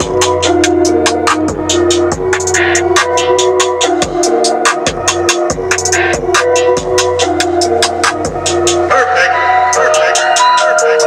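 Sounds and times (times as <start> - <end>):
electronic music with deep bass: 0.0 - 11.0.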